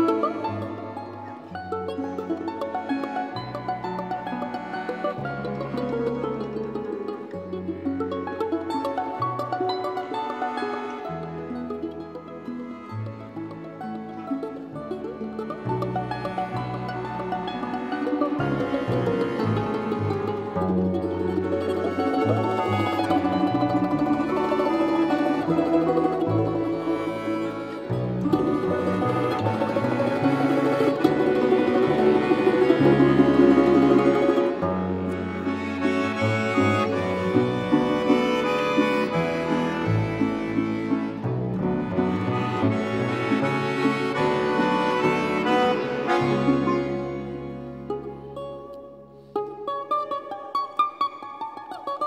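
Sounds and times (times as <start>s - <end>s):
balalaika ensemble playing: 0.0s - 52.0s.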